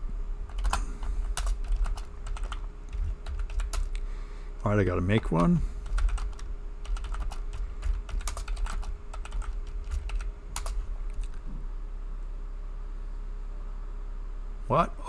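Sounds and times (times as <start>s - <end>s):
computer keyboard typing: 0.5s - 4.0s, 5.2s - 11.4s.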